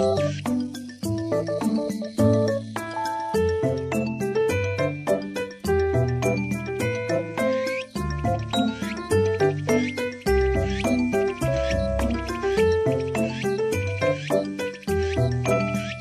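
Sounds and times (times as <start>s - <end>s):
piano chords and melody: 0.0s - 16.0s
steady ticking beat: 0.0s - 16.0s.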